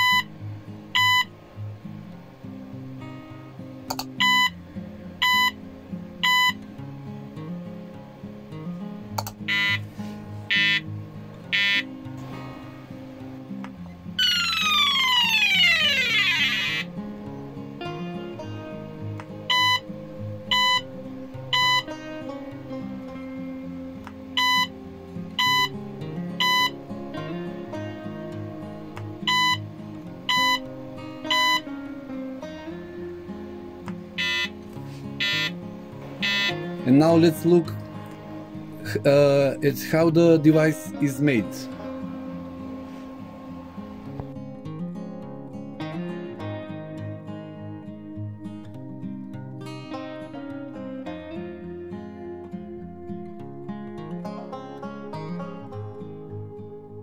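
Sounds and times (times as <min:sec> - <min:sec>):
short buzzer beeps: 0:00.0 - 0:00.3, 0:01.0 - 0:01.3, 0:04.2 - 0:04.6, 0:05.2 - 0:05.6, 0:06.2 - 0:06.6, 0:09.5 - 0:09.9, 0:10.5 - 0:10.9, 0:11.5 - 0:11.9, 0:19.5 - 0:19.8, 0:20.5 - 0:20.8, 0:21.5 - 0:21.9, 0:24.4 - 0:24.7, 0:25.4 - 0:25.7, 0:26.4 - 0:26.8, 0:29.3 - 0:29.6, 0:30.3 - 0:30.7, 0:31.3 - 0:31.7, 0:34.2 - 0:34.6, 0:35.2 - 0:35.6, 0:36.2 - 0:36.7
guitar background music: 0:00.0 - 0:57.0
sharp click: 0:03.9 - 0:04.2, 0:09.2 - 0:09.4.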